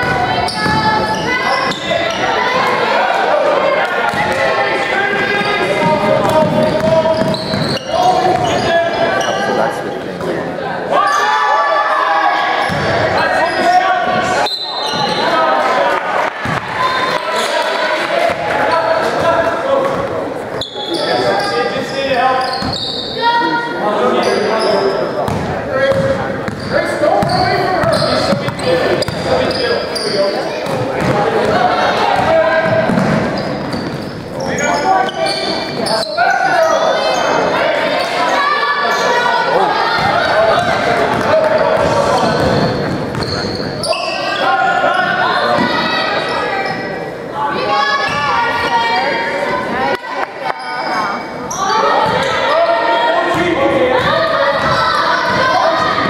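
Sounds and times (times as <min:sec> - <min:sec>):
sneakers squeaking on court: 0:00.0 - 0:02.4, 0:05.4 - 0:10.0, 0:14.4 - 0:15.4, 0:18.3 - 0:23.3, 0:24.2 - 0:31.5, 0:32.2 - 0:37.4, 0:40.0 - 0:45.2
voices calling and shouting: 0:00.0 - 0:56.0.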